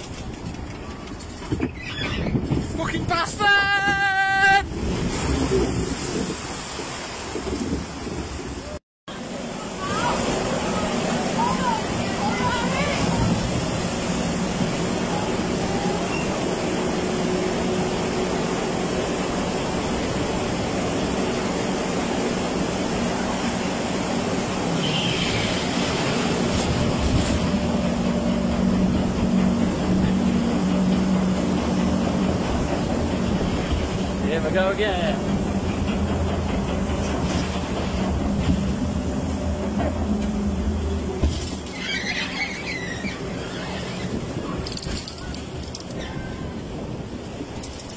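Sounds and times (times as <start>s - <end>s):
boat splashing in churning water: 0.0s - 47.9s
conveyor rumbling and humming: 0.0s - 47.9s.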